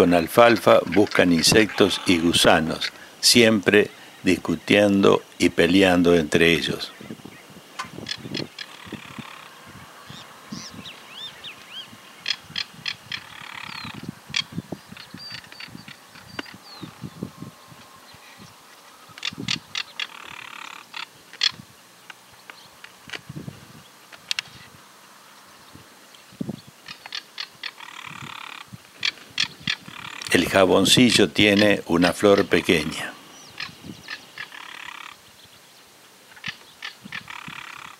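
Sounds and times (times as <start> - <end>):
harsh rattling bird calls: 0.0 - 37.9.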